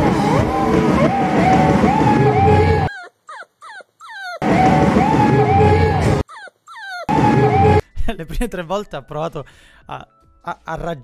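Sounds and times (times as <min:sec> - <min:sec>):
live rock band music: 0:00.0 - 0:02.9, 0:07.1 - 0:07.8
puppy whining: 0:02.6 - 0:04.4, 0:05.7 - 0:07.8.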